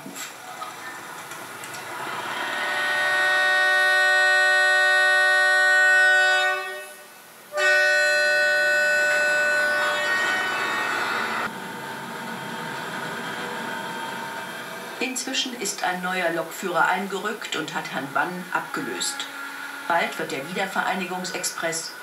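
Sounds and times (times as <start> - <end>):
locomotive horn blasts: 2.2 - 11.5, 18.1 - 21.2.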